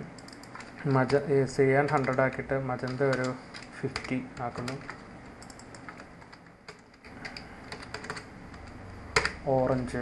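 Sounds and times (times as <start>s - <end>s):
computer keyboard typing: 0.2s - 10.0s.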